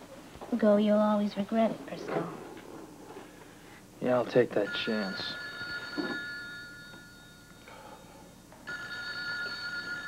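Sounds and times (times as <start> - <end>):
telephone ringing: 4.6 - 7.7, 8.6 - 10.0.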